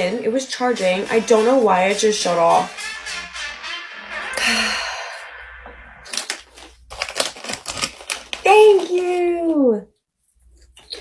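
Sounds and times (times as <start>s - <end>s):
person sighing: 4.4s - 5.3s
chip bag crinkling: 6.1s - 9.6s.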